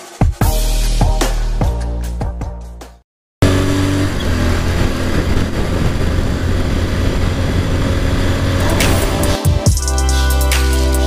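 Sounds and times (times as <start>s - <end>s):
wind and road noise: 3.4s - 9.4s
motorcycle engine hum: 3.4s - 9.5s.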